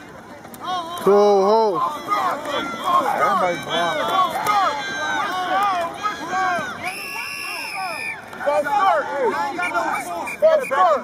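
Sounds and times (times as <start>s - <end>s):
people shouting: 0.6s - 11.0s
referee's whistle: 6.7s - 8.3s, 9.4s - 11.0s.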